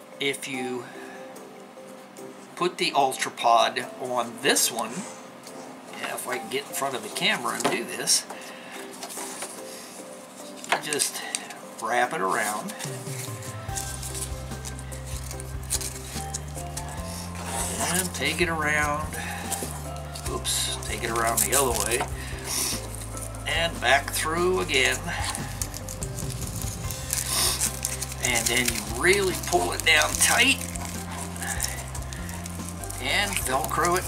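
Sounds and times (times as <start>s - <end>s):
soft background music: 0.0s - 34.0s
nylon strap rustling and scraping: 8.8s - 34.0s
person speaking: 17.0s - 25.7s, 28.1s - 34.0s
fabric strap rustling and knocking: 25.3s - 34.0s.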